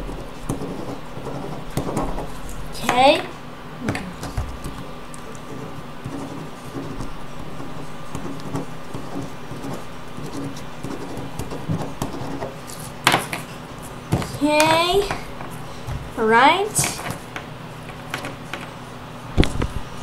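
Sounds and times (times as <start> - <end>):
ballpoint pen scratching paper: 0.0 - 3.3, 3.9 - 15.6.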